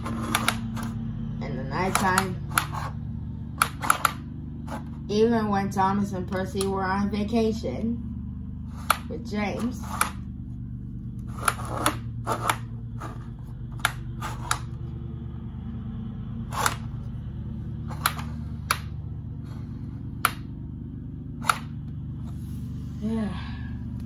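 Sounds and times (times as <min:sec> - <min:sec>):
toy turntable clicking: 0:00.0 - 0:00.9, 0:01.8 - 0:02.9, 0:03.6 - 0:04.2
steady low hum: 0:00.0 - 0:24.0.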